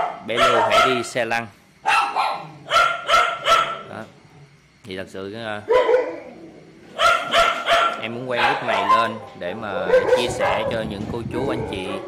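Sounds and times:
dog barking: 0.0s - 1.2s, 1.8s - 3.9s, 5.7s - 6.4s, 7.0s - 9.2s, 9.8s - 10.8s.

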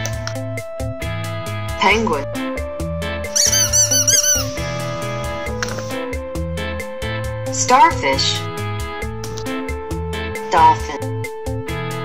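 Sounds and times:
children's music with steady beat: 0.0s - 12.0s
squeaky toy squeaks: 3.3s - 4.7s.

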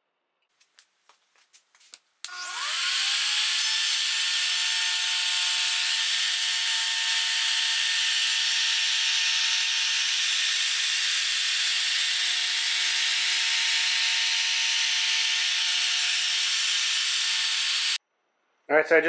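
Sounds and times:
router cutting plywood: 2.3s - 18.0s.

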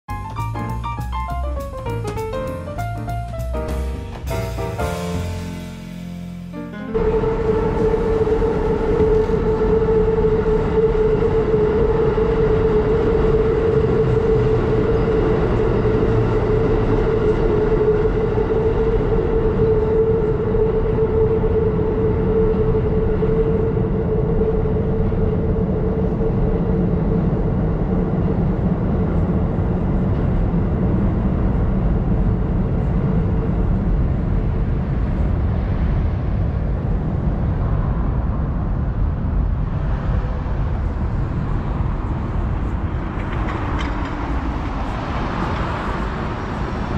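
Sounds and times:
railway machine hum: 0.1s - 46.9s.

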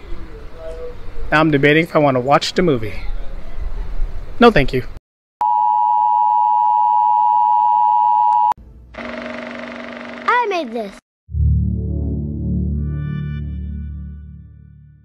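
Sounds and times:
slow low synth music: 11.3s - 15.0s.

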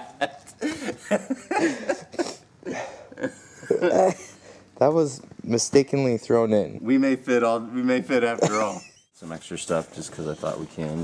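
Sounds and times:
people laughing: 0.0s - 2.4s, 8.4s - 9.0s.

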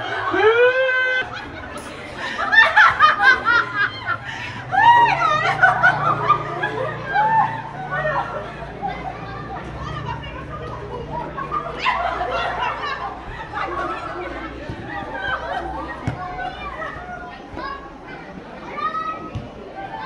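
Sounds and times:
women laughing: 0.0s - 15.9s
women chattering: 0.0s - 20.0s.

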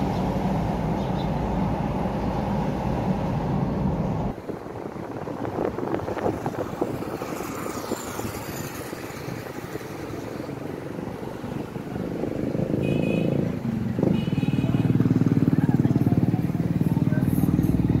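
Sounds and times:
street traffic: 0.0s - 18.0s
motorcycle engine running: 13.2s - 18.0s.

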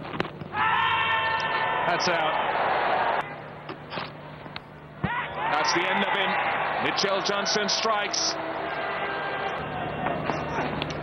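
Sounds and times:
players shouting an appeal: 5.0s - 10.3s.

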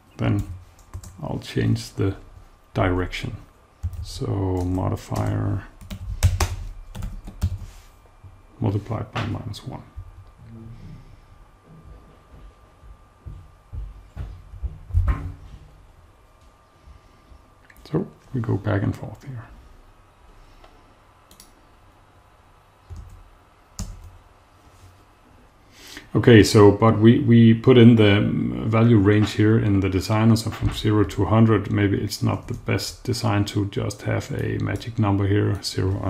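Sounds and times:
typing on computer keyboard: 0.4s - 1.2s, 3.8s - 7.6s
computer mouse clicks: 21.3s - 21.6s.

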